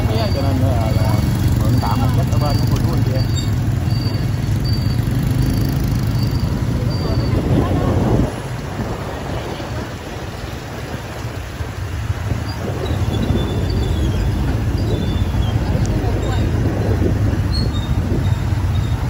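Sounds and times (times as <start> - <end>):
motorbike engines running: 0.0 - 19.0
road and wind noise: 0.0 - 19.0.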